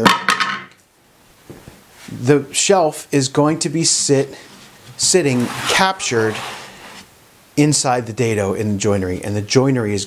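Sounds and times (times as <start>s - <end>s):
man speaking: 2.1s - 6.7s, 7.6s - 10.0s.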